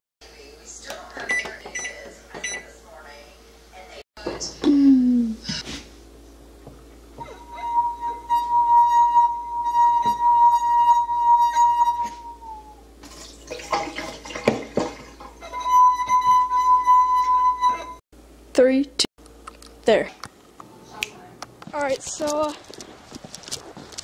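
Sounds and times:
singing wine glass ringing tone: 0:07.2 - 0:12.4, 0:15.4 - 0:18.0.

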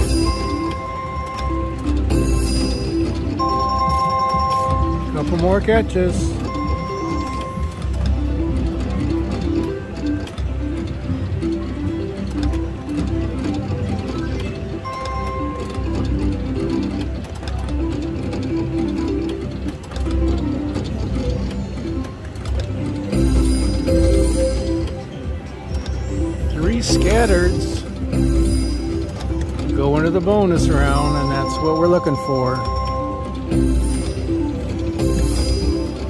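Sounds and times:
slot machine electronic melody: 0:00.0 - 0:36.0.

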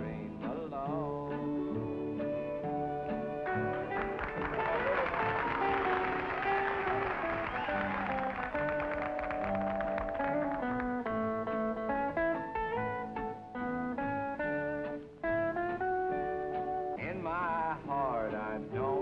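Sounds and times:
country guitar picked melody: 0:00.0 - 0:19.0.

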